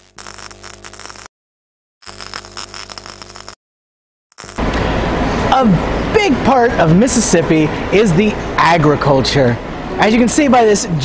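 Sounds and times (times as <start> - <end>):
electronic static with buzzing hum: 0.0 - 1.3, 2.0 - 3.6, 4.3 - 4.7.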